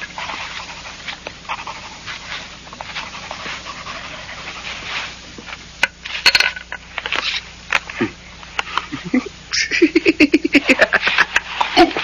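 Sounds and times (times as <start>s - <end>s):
man's breathy laughter: 8.8s - 12.0s.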